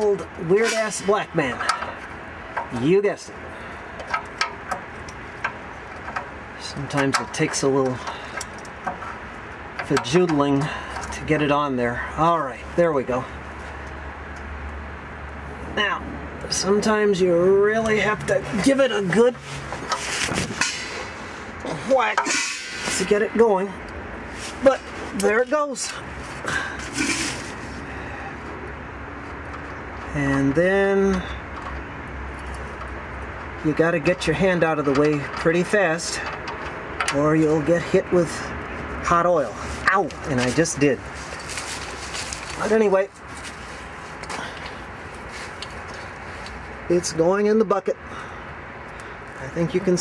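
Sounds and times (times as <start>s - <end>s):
steady low hum: 0.0s - 47.3s
drain plug scraping: 17.9s - 23.6s, 26.3s - 27.7s.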